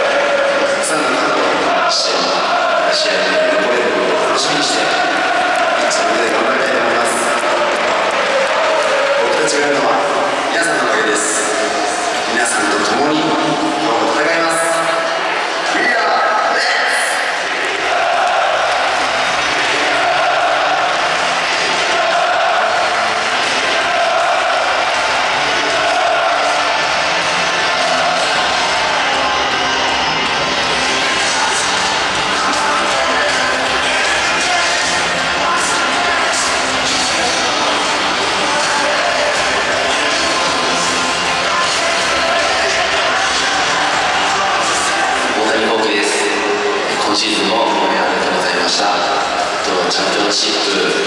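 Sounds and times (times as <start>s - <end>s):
crowd singing chants: 0.0s - 13.8s, 16.7s - 47.0s.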